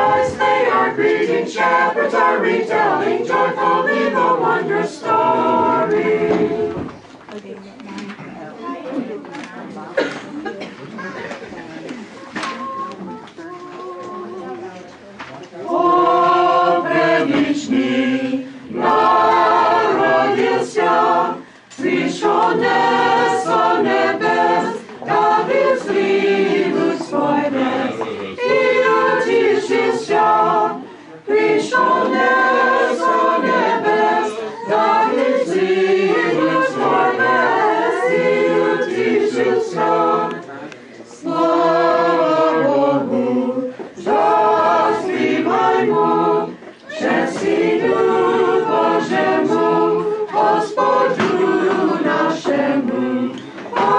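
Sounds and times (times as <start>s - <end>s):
mixed choir singing a cappella: 0.0s - 7.0s, 15.6s - 53.9s.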